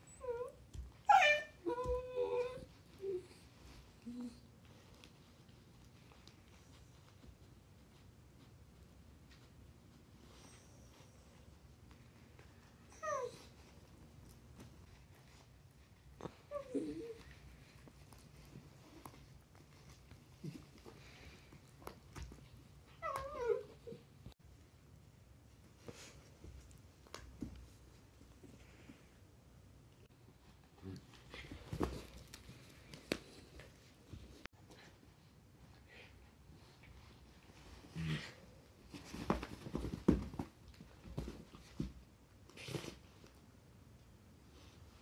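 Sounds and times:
puppy whining: 0.0s - 4.5s, 12.8s - 13.8s, 16.2s - 19.2s, 22.4s - 24.4s.

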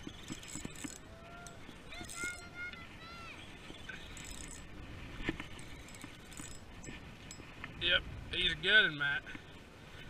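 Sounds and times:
fishing reel cranking: 0.0s - 2.4s, 3.9s - 4.7s, 5.4s - 7.4s
reel clicks and rattles: 0.0s - 2.4s, 3.7s - 7.5s.

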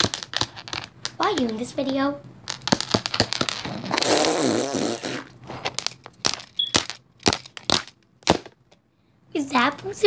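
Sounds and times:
dolls tapping on wooden floor: 0.0s - 3.7s, 5.7s - 8.8s.

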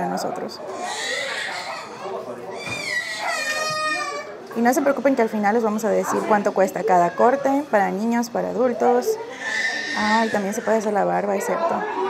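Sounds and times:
young child crying: 2.6s - 4.4s.

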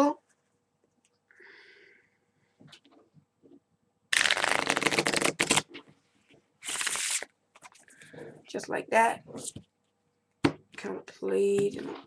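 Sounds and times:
playing cards riffle shuffling: 4.2s - 5.8s, 6.6s - 7.8s.

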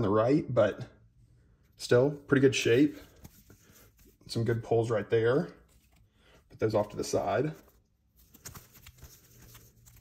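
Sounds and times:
trading cards being shuffled: 5.7s - 10.0s.

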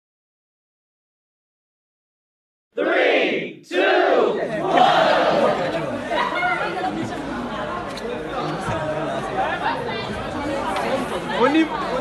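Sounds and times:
crowd chattering: 2.8s - 12.0s.

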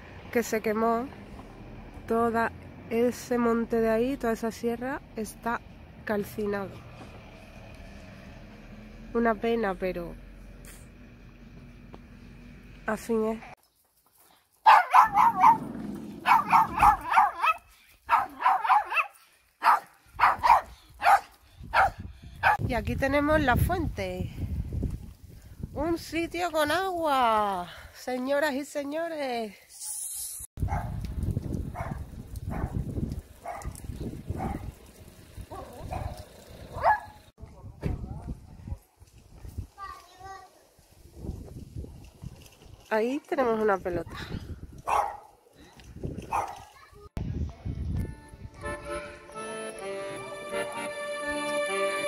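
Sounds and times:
footsteps on paved street: 1.2s - 2.7s, 6.5s - 8.5s, 11.4s - 22.0s
small dog yapping: 14.7s - 22.6s, 46.3s - 46.7s
wind rumbling on microphone: 20.1s - 27.2s, 30.6s - 39.8s, 40.8s - 42.9s, 43.8s - 48.6s.

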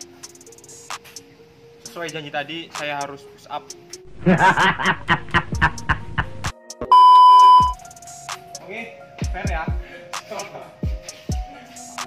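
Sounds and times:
man laughing: 4.2s - 6.4s
steady electronic beep: 6.9s - 7.8s.

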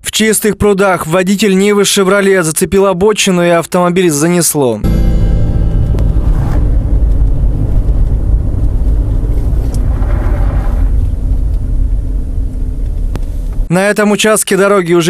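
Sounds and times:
car engine and tyres rumbling: 4.8s - 13.7s.

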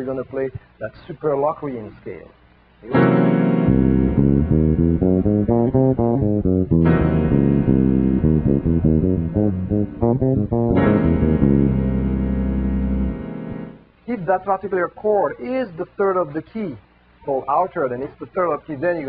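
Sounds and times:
sustained keyboard chord: 2.9s - 13.9s
electric bass scale runs: 3.0s - 13.7s.

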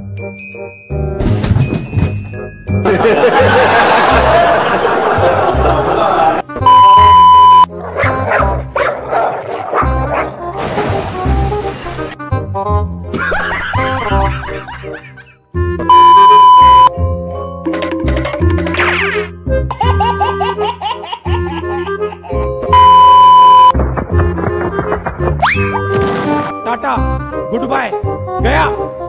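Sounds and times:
steady test-tone beep: 6.7s - 7.7s, 15.9s - 16.9s, 22.8s - 23.7s
dog barking: 7.9s - 10.4s
baby laughing: 13.2s - 15.4s, 18.1s - 22.5s.

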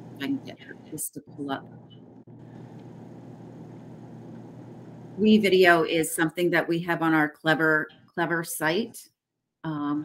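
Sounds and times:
faint hum and hiss: 0.0s - 6.0s.

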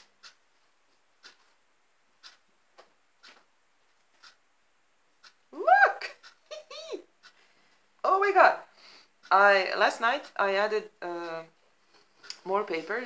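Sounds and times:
woman saying ooh: 5.6s - 7.1s.

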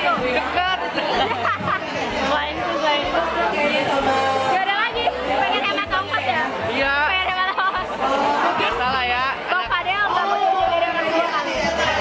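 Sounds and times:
background music with low bass: 0.0s - 12.0s
teenagers chattering and laughing: 0.0s - 12.0s.

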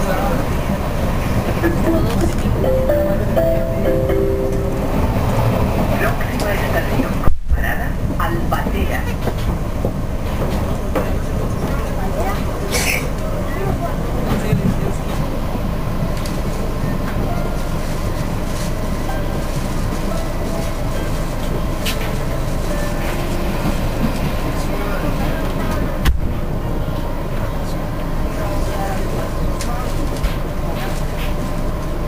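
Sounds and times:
train wheels on rails: 0.0s - 32.0s.

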